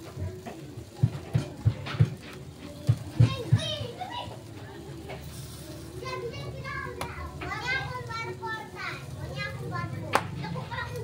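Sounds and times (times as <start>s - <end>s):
children chattering and calling: 2.6s - 11.0s.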